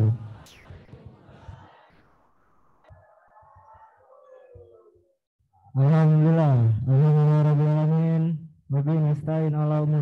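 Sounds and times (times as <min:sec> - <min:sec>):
man chanting a recitation: 0:05.6 - 0:10.0.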